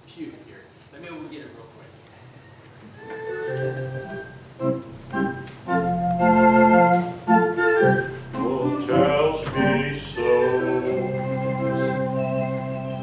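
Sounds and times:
organ playing chords: 3.0s - 13.0s.

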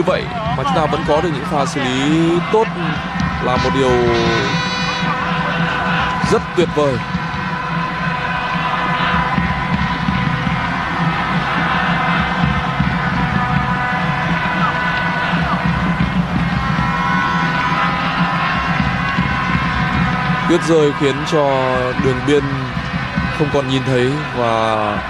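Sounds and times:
background music with held tones: 0.0s - 25.0s
stadium crowd noise: 0.0s - 25.0s.

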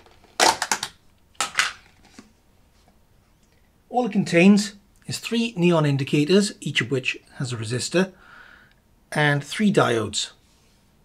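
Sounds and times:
plastic lid cracks: 0.0s - 2.0s.

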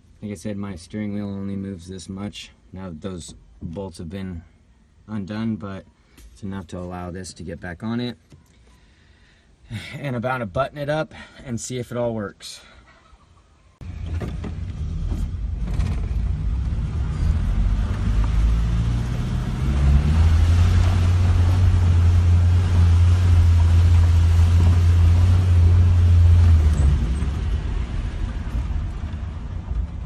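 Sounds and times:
car engine inside cabin: 13.8s - 30.0s.

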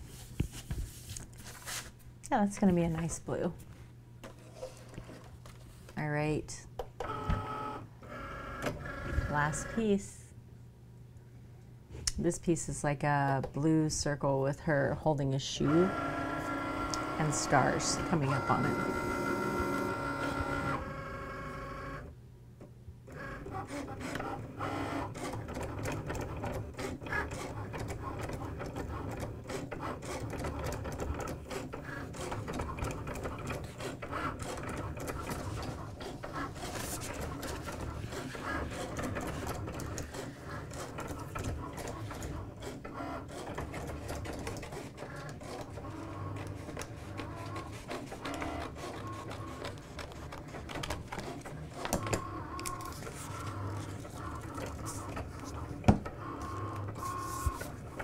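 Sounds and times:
cutting machine motors whirring: 15.7s - 22.1s, 33.8s - 58.0s.

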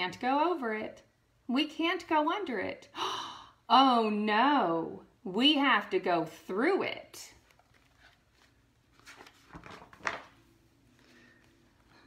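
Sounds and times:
book page rustling: 7.3s - 12.0s.

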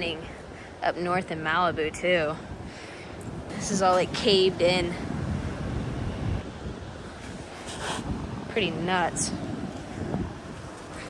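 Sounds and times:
wind buffeting microphone: 0.0s - 11.0s
ocean surf: 3.4s - 11.0s.

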